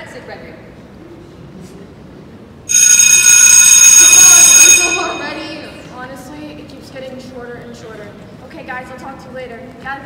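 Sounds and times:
school bell ringing: 2.7 - 6.0.

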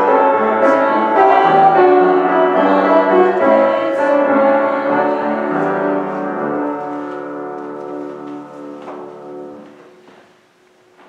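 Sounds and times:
keyboard holding a hymn chord: 0.0 - 10.1.

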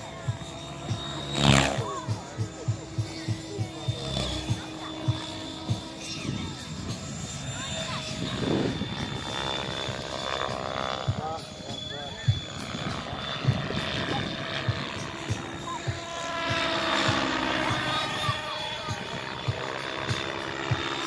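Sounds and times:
helicopter rotor: 0.0 - 21.0
model helicopter whine: 0.0 - 21.0.

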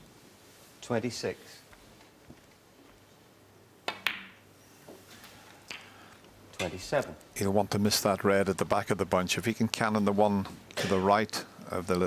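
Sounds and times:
snooker balls colliding: 3.8 - 4.4
ball knock into pocket: 3.9 - 4.4.

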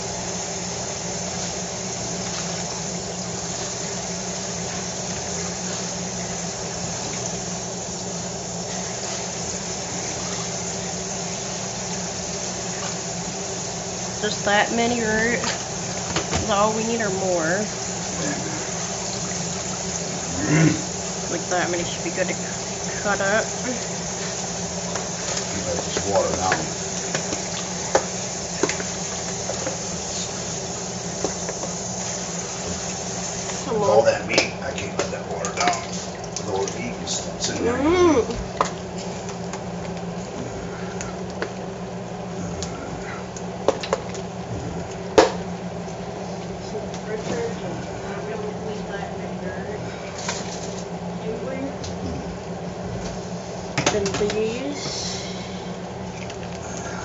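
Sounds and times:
tap water running into sink: 0.8 - 37.5.

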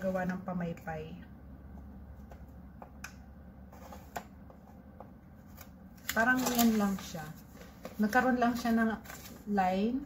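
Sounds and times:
paper handling and scraping: 5.4 - 9.8.

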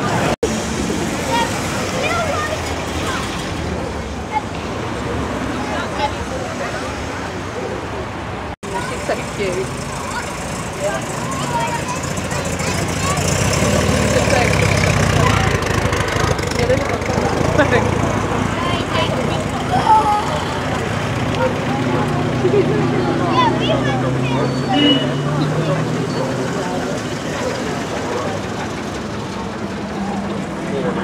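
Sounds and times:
car engines at low revs: 0.0 - 31.0
crowd chatter: 0.0 - 31.0.

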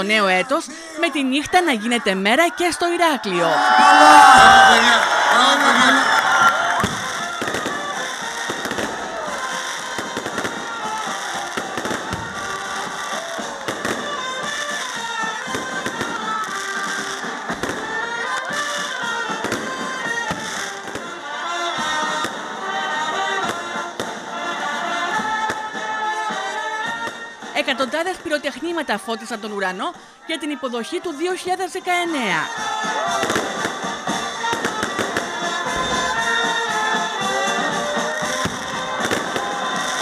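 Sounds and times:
voices: 0.0 - 8.0, 27.6 - 33.3
fireworks bursting and crackling: 0.0 - 40.0
music playing: 0.0 - 40.0.

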